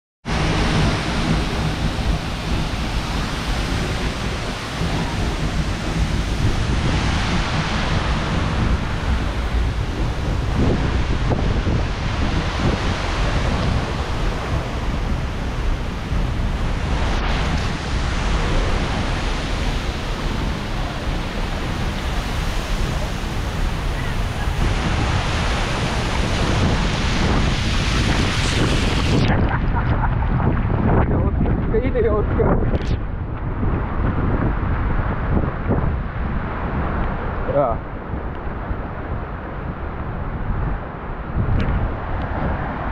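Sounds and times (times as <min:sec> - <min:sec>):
wind buffeting microphone: 0:00.2 - 0:42.9
waterfall rushing: 0:00.3 - 0:30.8.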